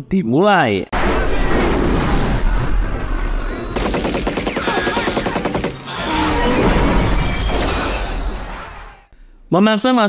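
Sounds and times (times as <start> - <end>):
explosions rumbling: 0.9 - 9.0
automatic gunfire: 3.8 - 6.0.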